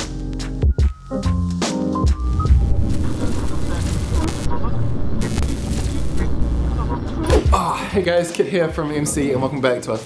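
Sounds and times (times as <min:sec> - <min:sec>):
heavy low rumble: 0:02.3 - 0:07.3
noisy hiss: 0:02.4 - 0:07.2.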